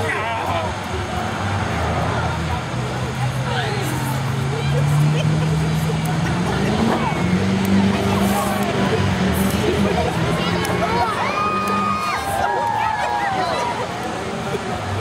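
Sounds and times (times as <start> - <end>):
crowd voices and shouts: 0.0 - 15.0.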